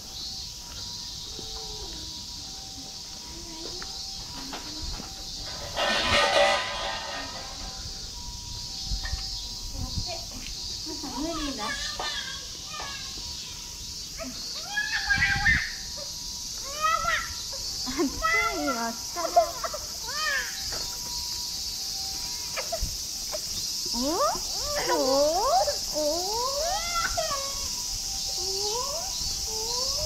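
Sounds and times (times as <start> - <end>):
cicadas droning: 0.0 - 30.0
child chattering and calling: 11.0 - 13.4, 16.6 - 20.6, 23.9 - 30.0.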